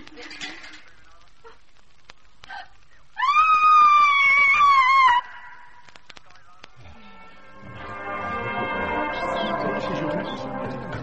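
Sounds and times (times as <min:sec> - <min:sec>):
person screaming: 0:03.2 - 0:05.8.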